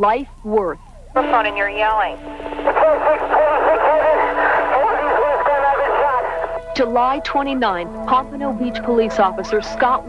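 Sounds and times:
steady radio tone: 0:01.2 - 0:07.0
man speaking over police radio: 0:02.7 - 0:06.8.

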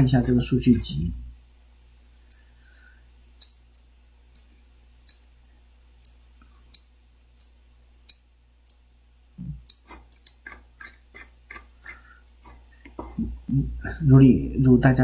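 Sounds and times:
faint low hum: 0:00.0 - 0:15.0
computer mouse clicking: 0:09.7 - 0:12.6.

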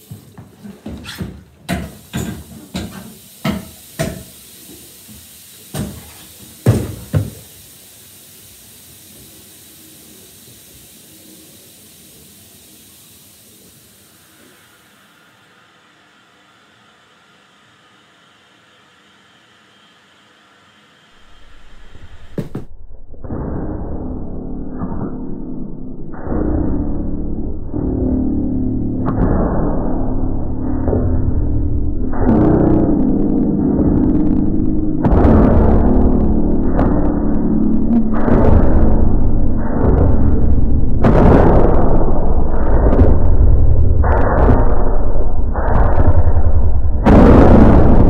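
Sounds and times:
steady hiss: 0:00.0 - 0:22.7
hard bangs in tiled room: 0:05.7 - 0:07.6, 0:39.8 - 0:48.0
loud low rumbling: 0:21.2 - 0:48.0.

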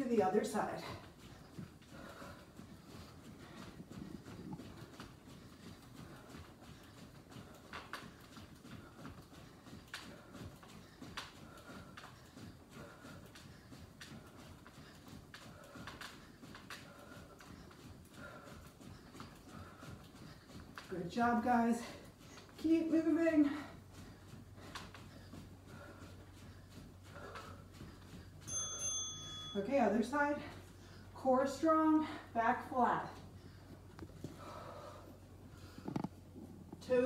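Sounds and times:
footsteps jogging on a mat: 0:00.0 - 0:37.0.

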